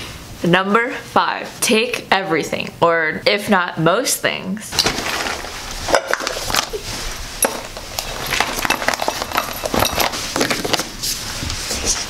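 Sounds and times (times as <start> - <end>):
fabric bag rustling: 4.7 - 12.0
small items clinking and knocking: 4.8 - 11.0.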